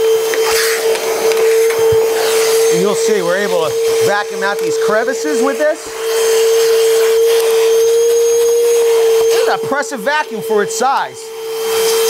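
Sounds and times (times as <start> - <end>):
air and sawdust rushing: 0.0 - 12.0
vacuum motor whine: 0.0 - 12.0.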